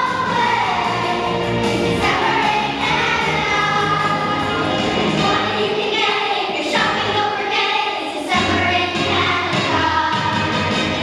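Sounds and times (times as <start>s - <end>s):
low instrumental accompaniment: 0.0s - 5.8s
children's choir singing: 0.0s - 11.0s.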